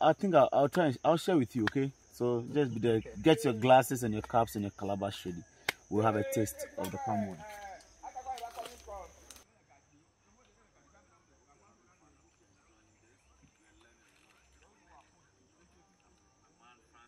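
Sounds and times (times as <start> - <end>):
high-pitched insect drone: 0.0 - 9.4.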